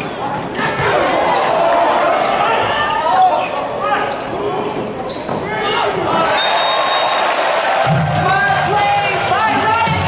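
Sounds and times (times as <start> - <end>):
shoes squeaking on court: 3.4 - 5.7.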